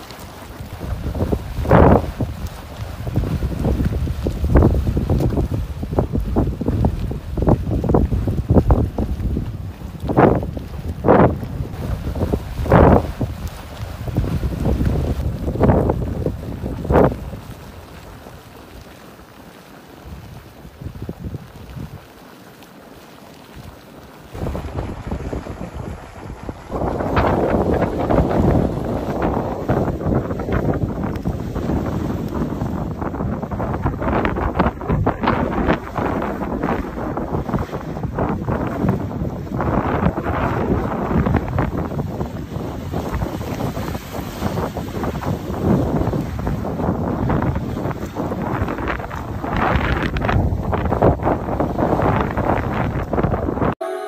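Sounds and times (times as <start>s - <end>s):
wind buffeting microphone: 0.0s - 19.0s, 19.9s - 22.2s, 24.3s - 53.8s
geyser erupting: 0.0s - 53.8s.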